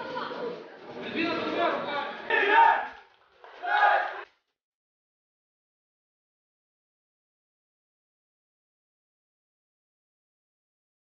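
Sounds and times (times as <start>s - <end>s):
spectators shouting: 2.3s - 4.2s.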